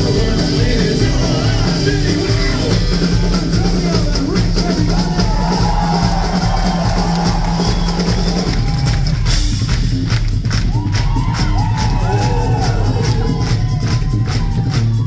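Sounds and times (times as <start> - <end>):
live folk band playing: 0.0 - 5.7
crowd cheering and whooping: 4.7 - 9.5, 10.4 - 15.0.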